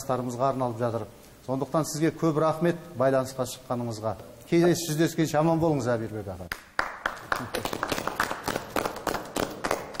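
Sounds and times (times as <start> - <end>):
people applauding: 6.5 - 10.0.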